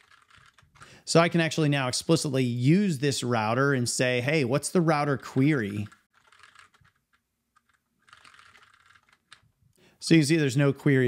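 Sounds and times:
keyboard typing: 0.0 - 0.9, 5.2 - 9.5.

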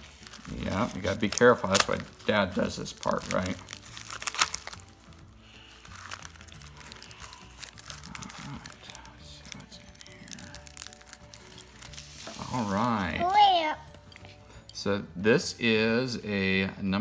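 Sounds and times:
paper packaging crinkling and tearing: 0.0 - 13.6
quiet background music: 0.0 - 17.0.

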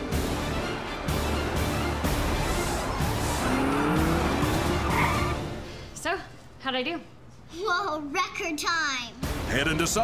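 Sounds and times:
music: 0.0 - 6.1, 8.5 - 10.0
race car engine revving: 3.0 - 5.5
tyre squeals: 3.4 - 5.5.

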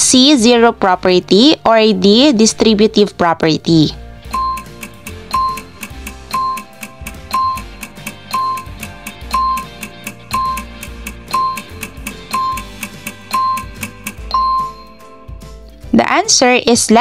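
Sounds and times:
countdown music with ticking beat: 3.9 - 15.8
short beeps: 4.3 - 15.0.

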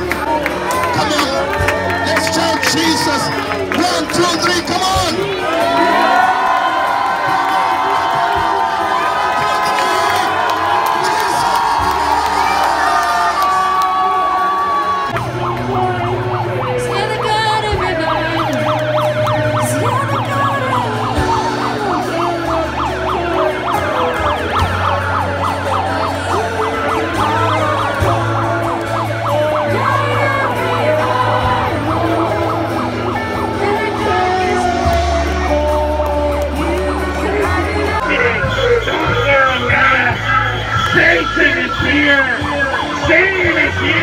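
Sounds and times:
crowd singing along: 0.0 - 44.0.

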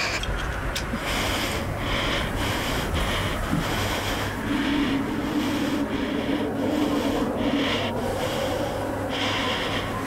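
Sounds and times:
heavy laboured breathing: 0.0 - 10.0
wind rushing: 0.0 - 10.0.

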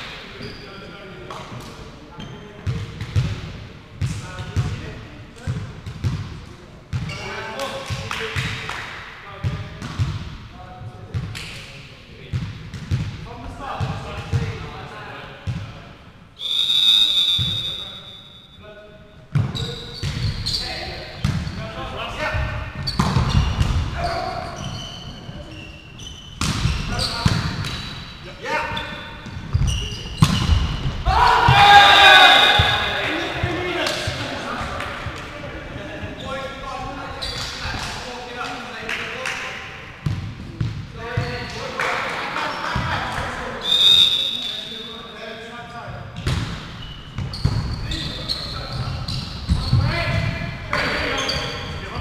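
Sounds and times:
referee's whistle: 16.4 - 18.6, 31.6 - 33.0, 43.6 - 45.2
footfalls in sports hall: 19.3 - 28.0, 28.7 - 38.6, 45.8 - 52.0
volleyball hits: 22.3 - 24.0, 26.4 - 28.0, 29.2 - 35.3, 46.2 - 47.7
players calling out: 28.6 - 37.9
loud shouting: 31.0 - 33.4.

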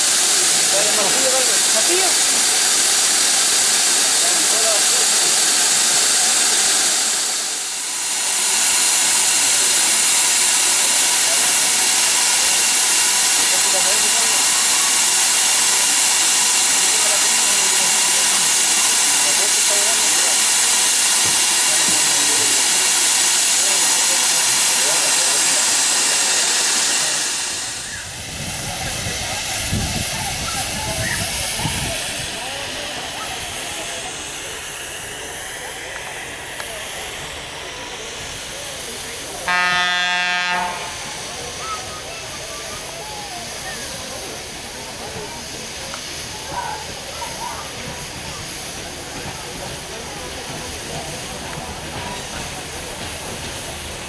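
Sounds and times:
steam locomotive hissing: 0.0 - 54.0
horn blast: 39.5 - 41.0.

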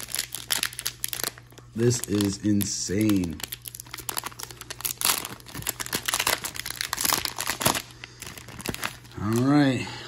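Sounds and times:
plastic wrapper crinkling: 0.0 - 9.7.

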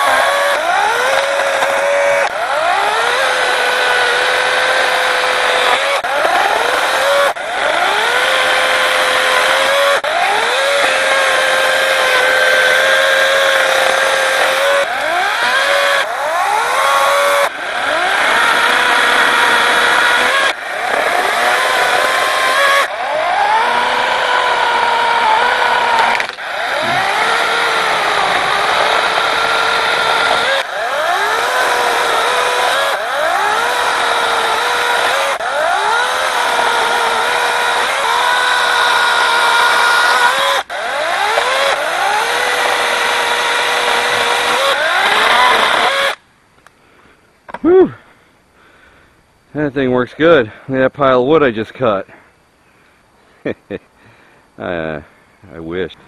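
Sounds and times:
battery chainsaw cutting wood: 0.0 - 46.2.

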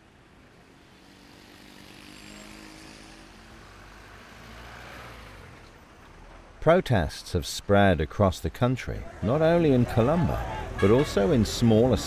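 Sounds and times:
motor vehicles passing: 0.0 - 6.5, 9.0 - 12.0
motorcycle passing: 0.6 - 5.5.

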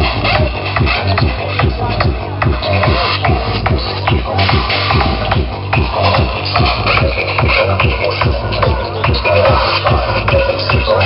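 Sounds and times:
fast kick drum: 0.0 - 11.0
psytrance music: 0.0 - 11.0.

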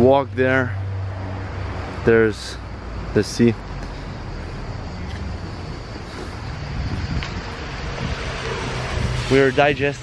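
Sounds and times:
road traffic noise: 0.0 - 10.0
wind on microphone: 5.2 - 10.0.

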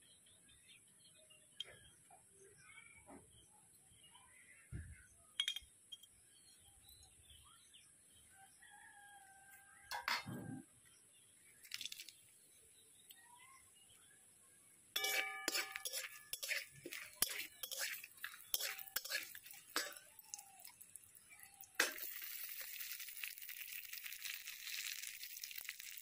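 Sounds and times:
small birds chirping: 0.0 - 9.0, 10.4 - 26.0
rooster crowing: 8.5 - 9.9
metal spatula scraping a pan: 15.0 - 20.4, 21.8 - 22.2.

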